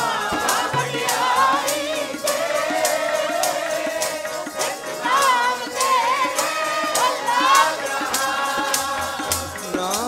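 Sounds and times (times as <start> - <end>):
congregation singing in chorus: 0.0 - 10.0
harmonium: 0.0 - 10.0
tabla strokes: 0.0 - 10.0.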